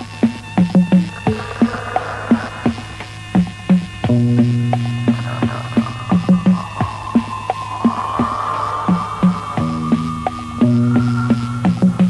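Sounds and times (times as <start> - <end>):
percussion hits dropping in pitch: 0.0 - 12.0
held low synth note: 4.2 - 12.0.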